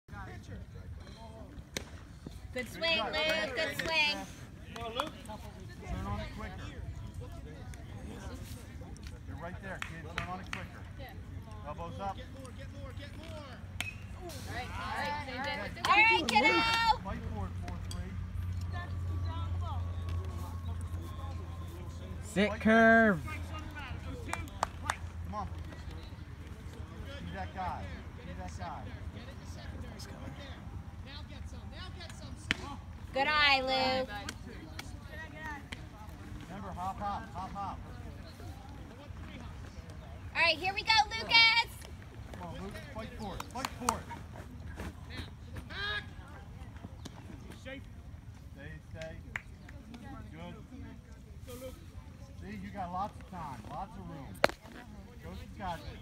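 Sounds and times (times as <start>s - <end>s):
distant voices: 0.4s - 56.0s.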